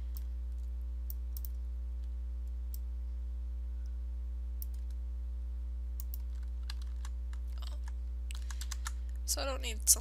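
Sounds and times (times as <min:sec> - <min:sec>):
low electrical hum: 0:00.0 - 0:10.0
keyboard and mouse clicking: 0:06.0 - 0:09.0.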